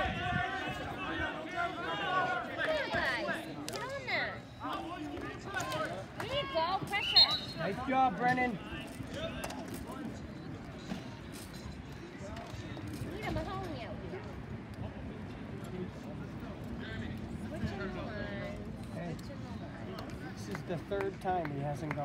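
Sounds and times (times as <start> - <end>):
spectators shouting: 0.0 - 3.5.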